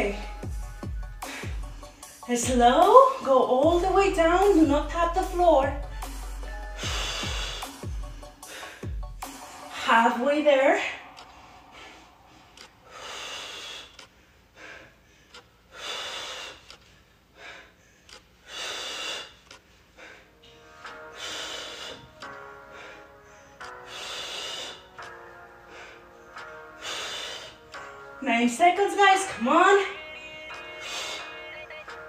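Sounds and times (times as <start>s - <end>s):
woman breathing hard: 0.2s - 2.3s, 5.8s - 10.0s, 10.8s - 28.2s, 30.6s - 32.0s.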